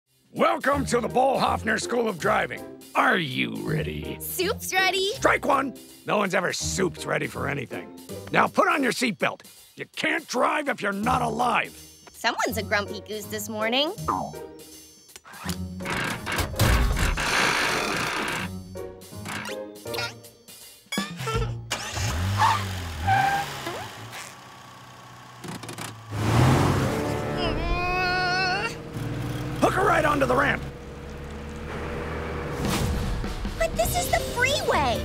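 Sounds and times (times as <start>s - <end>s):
cartoon background music: 0.1s - 22.6s, 26.5s - 28.8s, 32.6s - 35.0s
gear stick shifting: 21.7s - 33.0s
small car engine revving: 21.7s - 34.4s.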